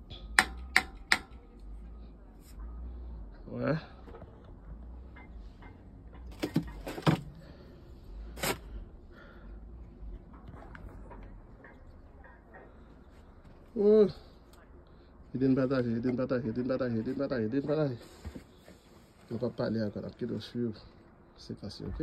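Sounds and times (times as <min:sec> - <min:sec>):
faint low rumble: 0:01.4 - 0:06.4.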